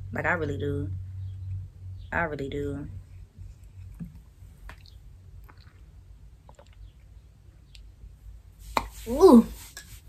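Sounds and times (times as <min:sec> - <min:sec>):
low hum: 0:00.0 - 0:06.4.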